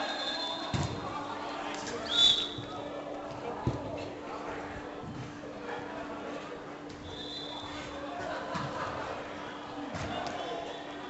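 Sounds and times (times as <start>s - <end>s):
short high whistle: 0.0s - 0.7s, 2.1s - 2.6s, 7.1s - 7.7s.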